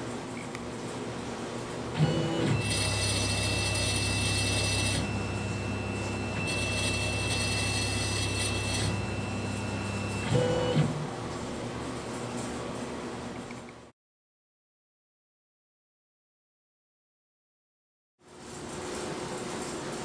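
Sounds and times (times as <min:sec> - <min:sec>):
stepper motors whining: 0:02.0 - 0:10.9.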